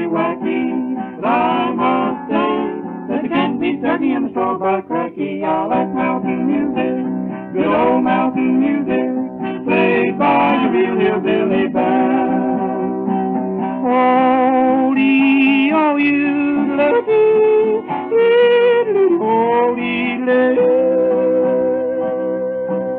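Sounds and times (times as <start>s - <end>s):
strummed acoustic guitar: 0.0s - 22.9s.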